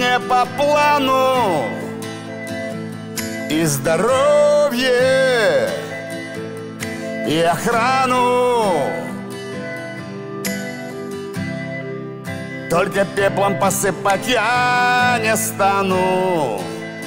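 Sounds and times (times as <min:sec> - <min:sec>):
person singing with vibrato: 0:00.0 - 0:09.7, 0:12.7 - 0:17.0.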